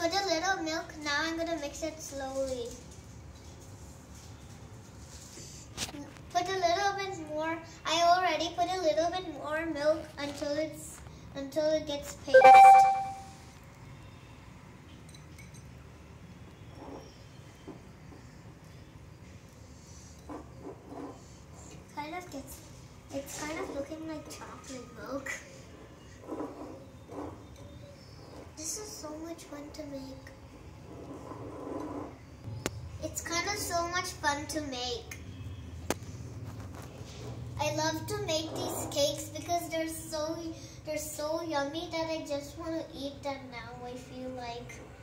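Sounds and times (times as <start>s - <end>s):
light clinks: 15.0s - 15.8s.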